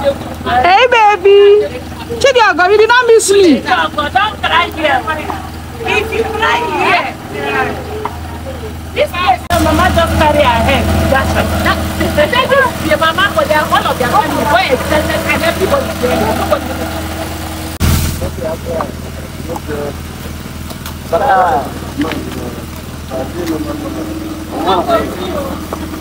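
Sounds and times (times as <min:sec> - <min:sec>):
low engine-like hum: 0:00.0 - 0:26.0.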